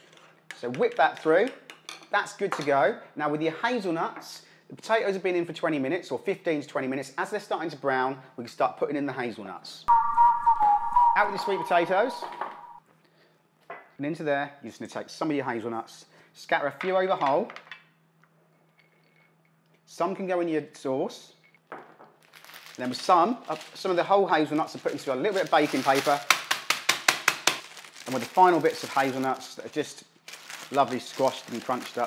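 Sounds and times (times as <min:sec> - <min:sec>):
whistle-like jingle note: 0:09.9 - 0:12.8
rolling pin bashing nuts: 0:26.1 - 0:27.7.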